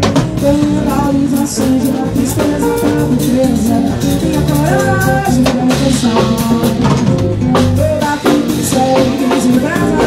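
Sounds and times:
drum and cymbal hits: 0.0s - 10.0s
electric bass: 0.0s - 10.0s.

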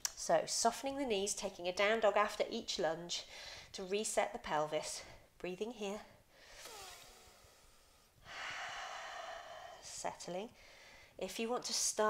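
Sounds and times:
woman breathing: 3.2s - 3.8s, 6.2s - 11.2s.

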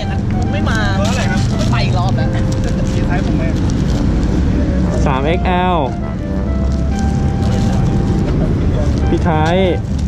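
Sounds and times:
low vehicle rumble: 0.0s - 10.0s
man talking: 4.8s - 6.0s, 7.4s - 9.8s.

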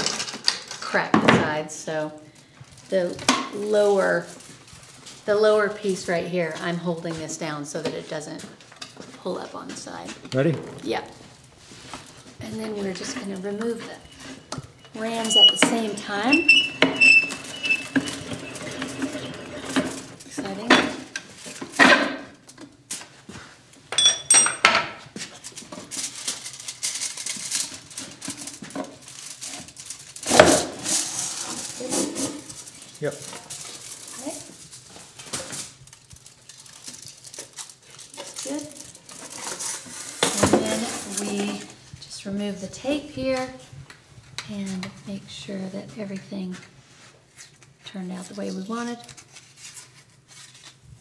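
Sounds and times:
metallic clinks and rattles: 23.9s - 24.7s
ringing metal pings: 24.0s - 24.6s.

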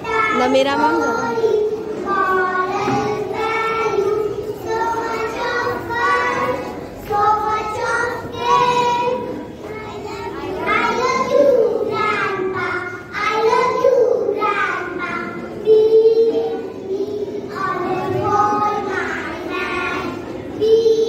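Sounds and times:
girls singing together: 0.0s - 21.0s.

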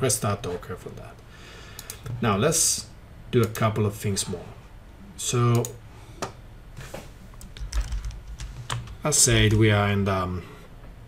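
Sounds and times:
computer keyboard typing: 1.8s - 2.1s, 7.4s - 9.7s.

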